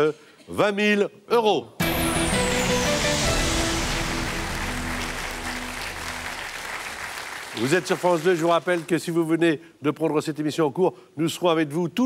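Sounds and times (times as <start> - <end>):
game show music sting: 1.8 - 7.0
audience applause: 2.2 - 8.9.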